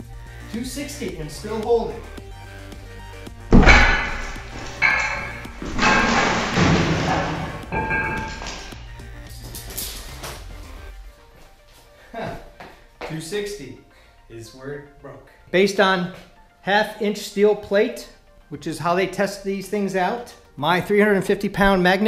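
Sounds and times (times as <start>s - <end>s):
background music: 0.0s - 22.0s
loud metal crash: 3.5s - 8.8s
metal clangs ringing: 3.5s - 8.8s.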